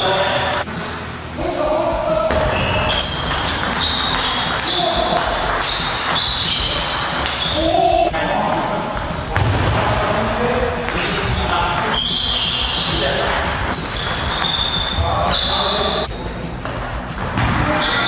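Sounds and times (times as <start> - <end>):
ball bouncing on table: 2.3 - 7.6, 16.6 - 18.0
ping pong ball on paddles: 2.3 - 16.0, 16.6 - 18.0.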